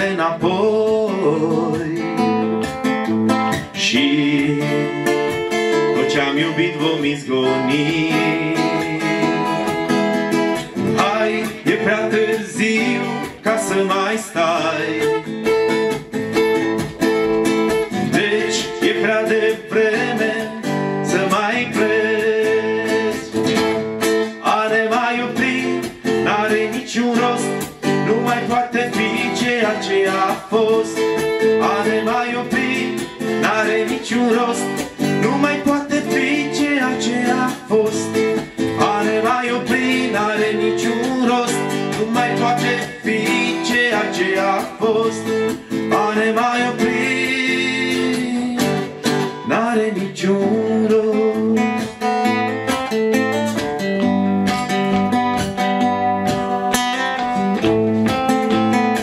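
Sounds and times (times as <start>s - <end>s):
man singing: 0.0s - 2.7s, 3.5s - 15.9s, 17.7s - 52.8s
acoustic guitars strummed: 0.0s - 59.0s.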